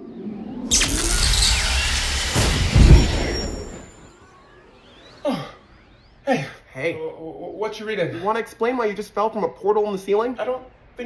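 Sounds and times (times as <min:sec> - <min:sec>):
portal rushing rumbling noise: 0:00.7 - 0:04.0.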